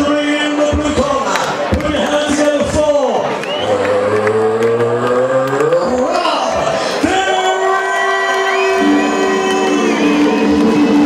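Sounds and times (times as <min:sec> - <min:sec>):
man announcing over loudspeaker: 0:00.0 - 0:10.6.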